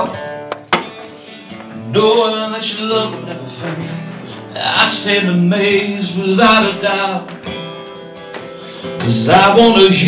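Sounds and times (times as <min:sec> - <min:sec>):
acoustic guitar strumming: 0:00.0 - 0:10.0
person singing: 0:01.7 - 0:07.4, 0:08.9 - 0:10.0.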